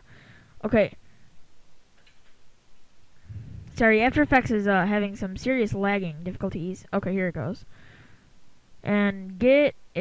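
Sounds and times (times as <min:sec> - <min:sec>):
low room noise: 0:00.0 - 0:10.0.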